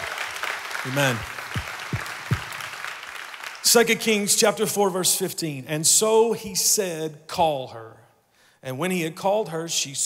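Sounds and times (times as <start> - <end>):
congregation applauding: 0.0 - 4.4.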